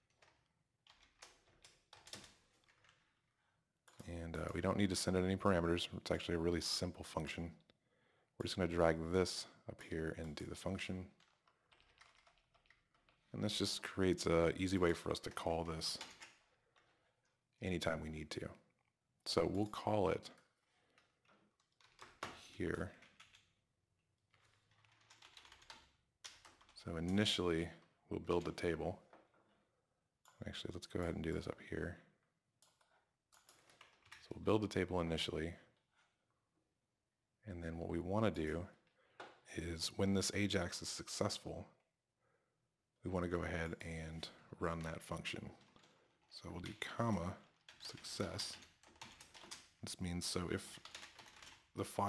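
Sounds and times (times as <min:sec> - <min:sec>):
keystrokes on computer keyboard: 0:00.0 - 0:03.0, 0:11.2 - 0:13.2, 0:21.0 - 0:22.4, 0:23.0 - 0:23.5, 0:24.3 - 0:27.2, 0:32.6 - 0:34.3, 0:46.6 - 0:49.8, 0:50.6 - 0:51.8.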